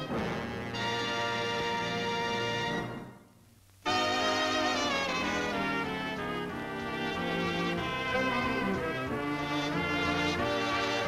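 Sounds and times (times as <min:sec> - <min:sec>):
orchestral fanfare: 0:00.0 - 0:03.2, 0:03.8 - 0:11.0
orchestral title music: 0:00.0 - 0:03.3, 0:03.9 - 0:11.0.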